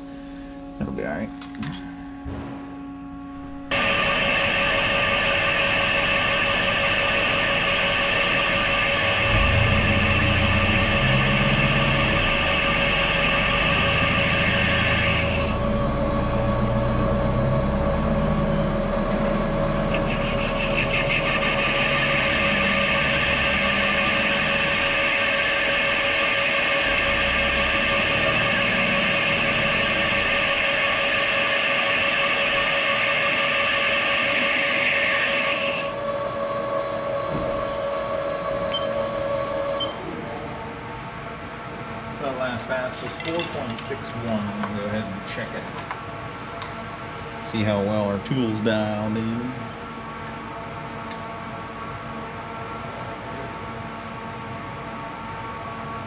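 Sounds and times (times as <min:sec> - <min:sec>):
lathe machine whine and rumble: 0:00.0 - 0:56.0
high-pitched cutting tool sound: 0:03.7 - 0:40.1.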